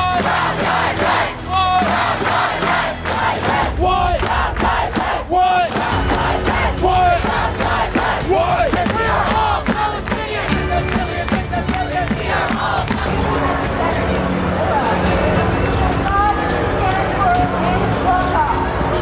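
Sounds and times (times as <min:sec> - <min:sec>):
crowd chanting in unison: 0:00.0 - 0:19.0
plastic bucket drumming: 0:07.2 - 0:13.1.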